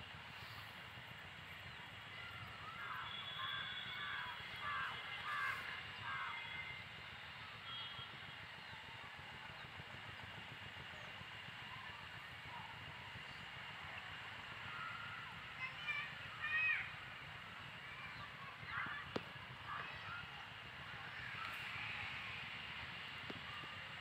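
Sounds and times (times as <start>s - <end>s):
steady background hiss: 0.0s - 24.0s
bird calling: 2.6s - 6.5s.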